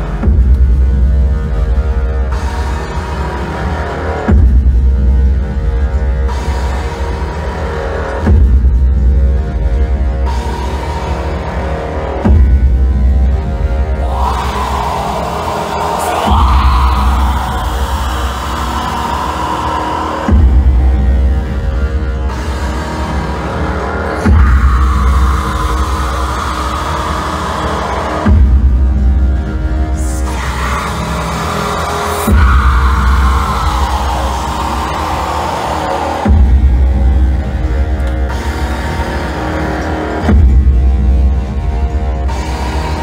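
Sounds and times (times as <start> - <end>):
electronic noise music: 0.0 - 43.0
heavy distorted low drone: 0.0 - 43.0
deep bass boom: 14.0 - 18.4
harsh midrange wail: 14.0 - 21.3, 23.4 - 28.2, 30.0 - 37.4.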